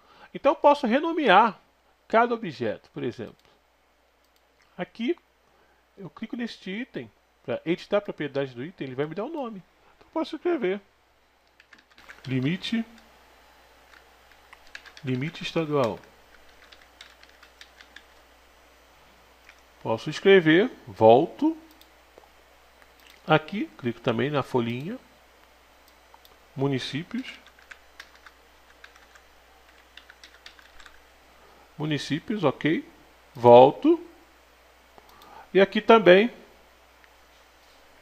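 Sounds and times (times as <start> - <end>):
keyboard keystrokes: 11.5 - 12.5, 13.9 - 15.0, 15.8 - 18.1, 27.4 - 31.0.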